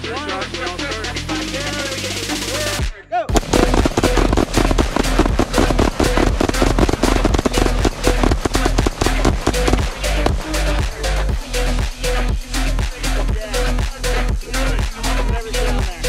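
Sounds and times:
electronic dance music: 3.3s - 16.0s
rapid overlapping gunshots: 3.4s - 11.0s.

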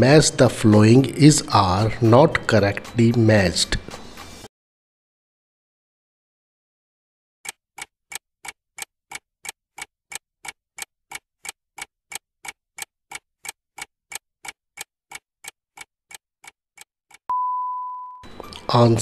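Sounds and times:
clock-like ticking: 0.0s - 4.5s, 7.5s - 17.2s
long steady beep: 17.3s - 18.4s.

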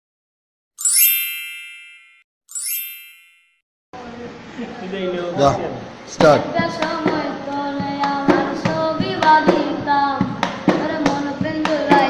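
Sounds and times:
bright electronic chime: 0.8s - 3.6s.

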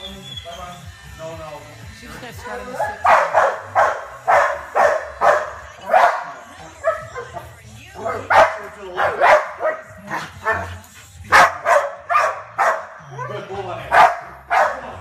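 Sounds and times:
dog barking: 2.6s - 7.4s, 8.1s - 15.0s.

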